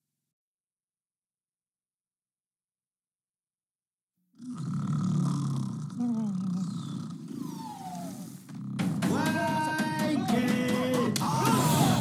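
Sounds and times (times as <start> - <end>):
cartoon snoring: 4.4 - 9.1
falling whistle: 7.4 - 8.4.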